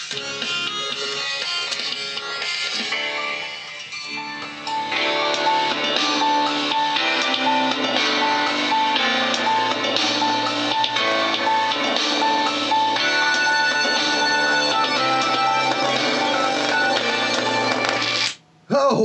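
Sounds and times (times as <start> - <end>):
rock music with guitar and drums: 0.0 - 18.2.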